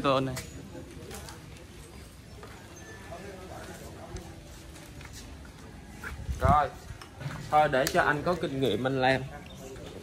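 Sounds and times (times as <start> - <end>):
low background murmur: 0.0 - 10.0.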